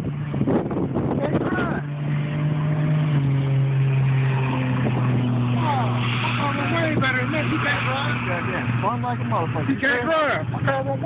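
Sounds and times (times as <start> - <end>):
car engine droning: 0.0 - 11.0.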